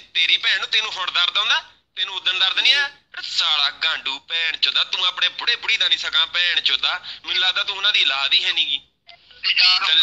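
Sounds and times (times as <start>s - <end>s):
man talking over telephone: 0.0s - 10.0s.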